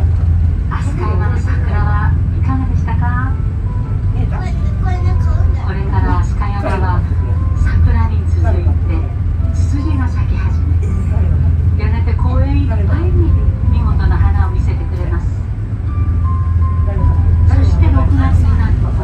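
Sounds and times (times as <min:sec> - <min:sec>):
monorail car humming on track: 0:00.0 - 0:19.0
people's voices: 0:00.6 - 0:03.4, 0:04.1 - 0:15.8, 0:16.6 - 0:19.0.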